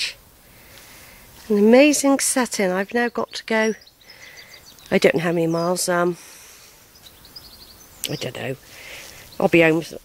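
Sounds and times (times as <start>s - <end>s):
faint outdoor background noise: 0.0s - 10.0s
faint bird chirps: 2.6s - 10.0s.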